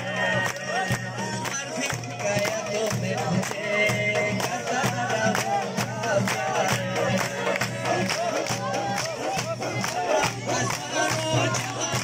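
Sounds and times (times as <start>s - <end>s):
crowd voices: 0.0s - 12.0s
fast drum beat: 0.0s - 12.0s
folk music: 0.0s - 12.0s.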